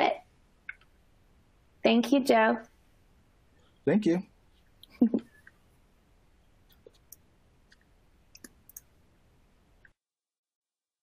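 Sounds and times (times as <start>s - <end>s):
computer mouse clicks: 6.7s - 8.9s.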